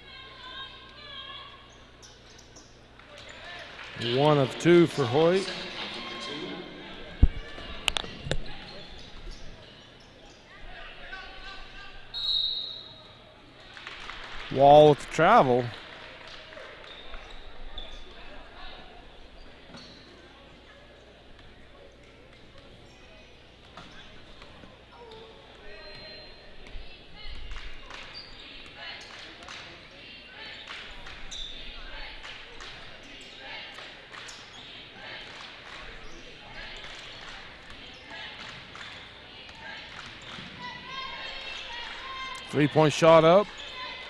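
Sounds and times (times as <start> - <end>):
murmur of voices: 0.0 - 44.0
sneakers squeaking on floor: 7.3 - 10.5, 16.9 - 18.2, 19.3 - 20.1, 25.1 - 26.6, 28.0 - 28.6, 30.5 - 31.8.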